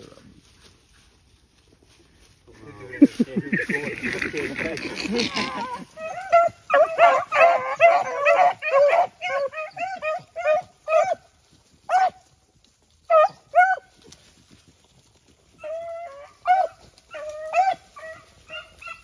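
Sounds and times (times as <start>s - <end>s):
dogs baying: 2.9s - 11.2s, 11.9s - 12.2s, 13.1s - 13.9s, 15.6s - 19.0s.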